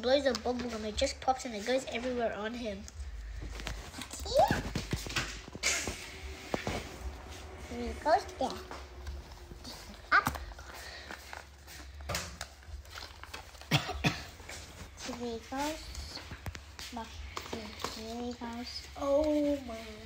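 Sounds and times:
children's voices: 4.0s - 4.8s, 7.6s - 11.1s, 15.0s - 20.0s.

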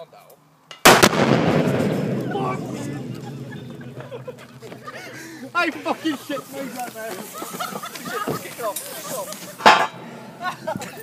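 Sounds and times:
sharp loud bang: 0.8s - 4.6s
people's voices: 1.8s - 11.0s.

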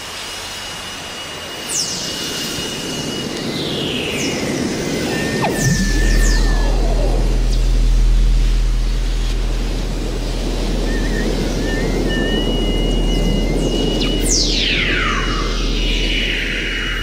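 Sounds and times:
falling whistles: 4.8s - 8.0s, 9.8s - 17.0s
warbling chirping tones: 4.8s - 17.0s
deep steady drone: 4.9s - 17.0s.

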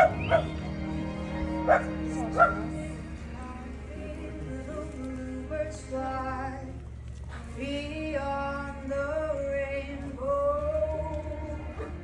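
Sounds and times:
small dog barking: 1.7s - 2.7s.

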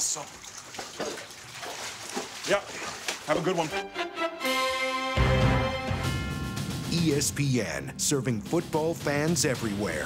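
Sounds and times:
water trickling: 0.0s - 3.8s.

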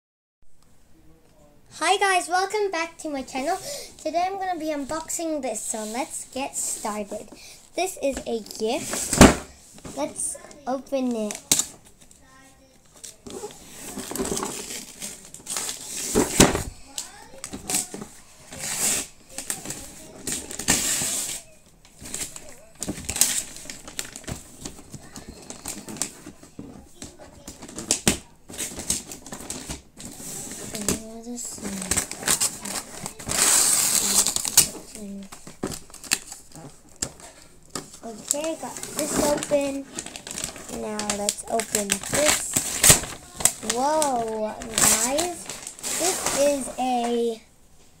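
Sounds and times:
paper crinkling: 11.0s - 47.4s
wrapping paper tearing: 13.0s - 17.9s, 18.5s - 26.2s, 27.5s - 37.4s, 38.0s - 47.4s.

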